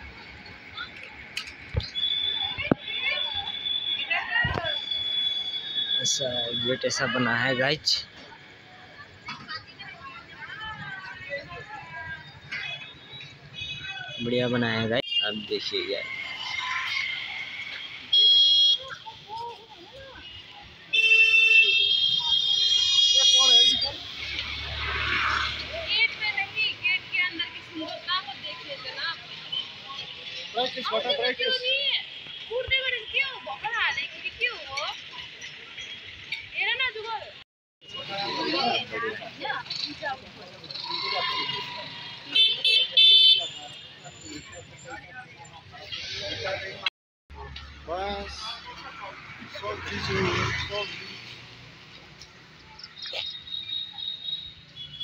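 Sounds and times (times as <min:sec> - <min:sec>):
faint street noise: 0:00.0 - 0:55.0
vehicle horn blast: 0:42.3 - 0:43.6.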